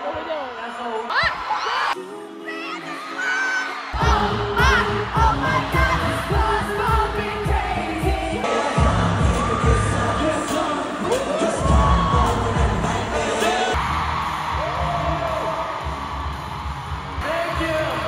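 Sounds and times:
amplified singing: 2.0s - 14.0s
crowd cheering: 8.4s - 18.0s.

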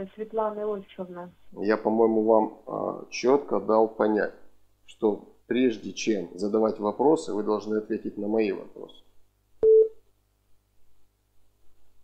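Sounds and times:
short telephone beep: 9.6s - 10.0s.

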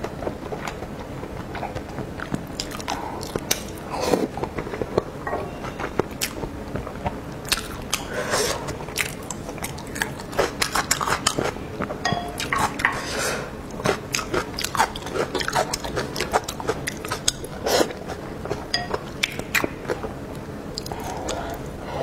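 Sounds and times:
wet chewing and mouth smacking: 0.1s - 13.0s, 13.6s - 21.7s.

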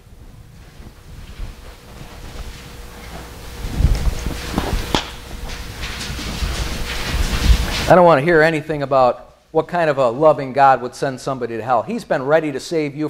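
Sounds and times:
faint steady hum: 0.0s - 13.0s
microphone handling rustling: 0.3s - 8.0s.

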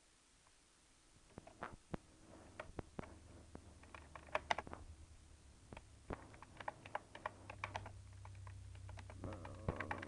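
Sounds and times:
low hum: 1.0s - 10.0s
keyboard keys clicking: 3.8s - 4.7s, 5.8s - 10.0s.

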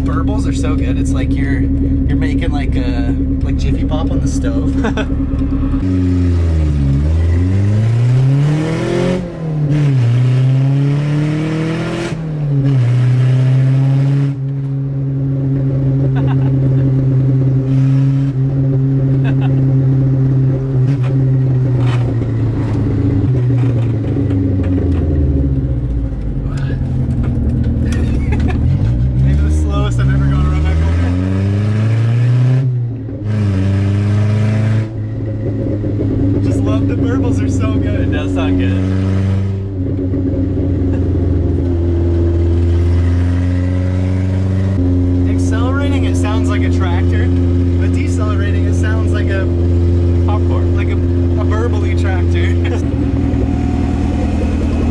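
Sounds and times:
exhaust popping burbles: 0.0s - 10.4s, 15.4s - 54.9s
car engine revving: 0.0s - 54.9s.

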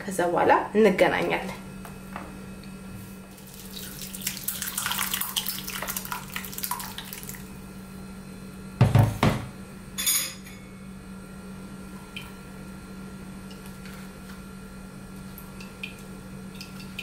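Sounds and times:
thick liquid pouring and splashing: 3.4s - 7.4s.

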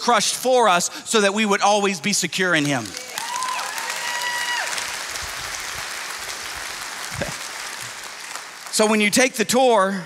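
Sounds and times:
congregation applauding: 2.6s - 9.4s.

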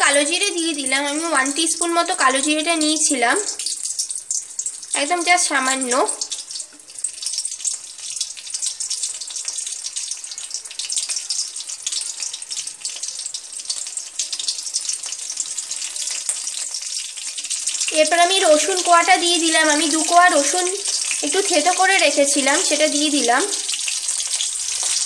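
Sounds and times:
seeds sizzling in hot oil: 0.0s - 25.0s.

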